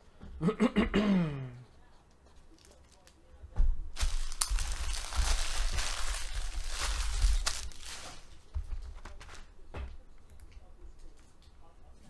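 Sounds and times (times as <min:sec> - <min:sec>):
foil wrappers crinkling: 0:04.0 - 0:09.5.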